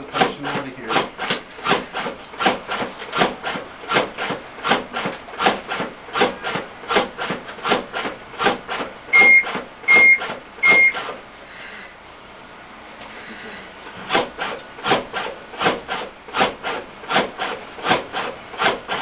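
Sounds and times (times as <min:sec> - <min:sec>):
rhythmic mechanical rasp: 0:00.0 - 0:11.2, 0:13.2 - 0:19.0
loud beeps: 0:09.1 - 0:11.1.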